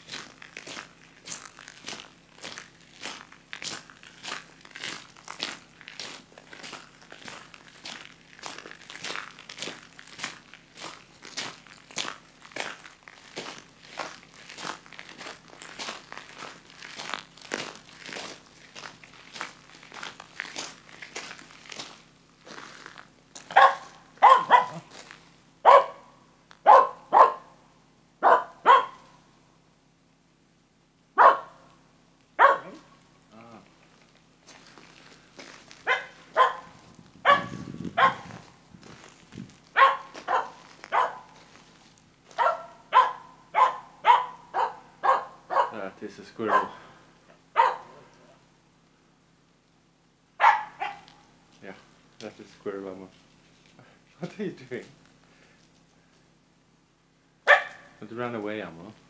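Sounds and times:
footsteps crunching on gravel: 0.0 - 27.6, 32.4 - 48.8, 50.4 - 56.7
dog barking: 23.5 - 24.9, 25.6 - 27.6, 28.2 - 29.2, 31.2 - 31.7, 32.4 - 32.9, 35.8 - 38.4, 39.8 - 41.4, 42.4 - 45.8, 46.4 - 46.9, 47.5 - 48.4, 50.4 - 51.2, 57.4 - 58.0.

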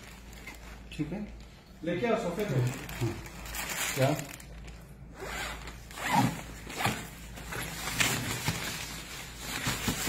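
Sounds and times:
zipper being pulled open: 5.2 - 7.0.

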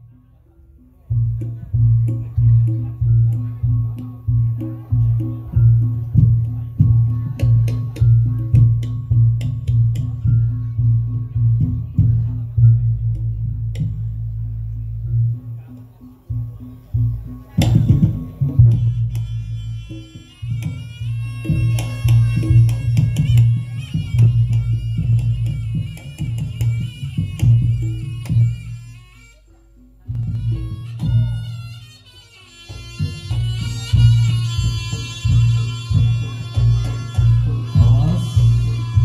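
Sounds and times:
deep steady bass: 0.0 - 31.8, 32.7 - 39.0
reedy shawm melody: 0.0 - 39.0
drum strokes: 1.0 - 39.0.

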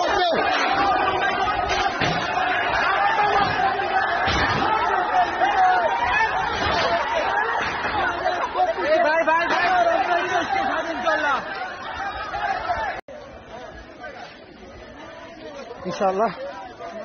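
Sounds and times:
men shouting and talking: 0.0 - 17.0.

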